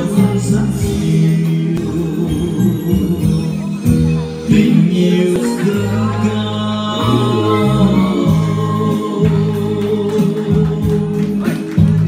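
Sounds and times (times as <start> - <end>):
man singing a hymn: 0.0 - 3.3, 4.5 - 11.7
musical accompaniment: 0.0 - 12.0.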